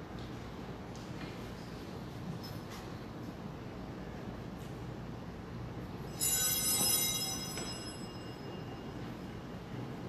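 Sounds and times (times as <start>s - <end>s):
bell ringing: 6.0s - 9.7s.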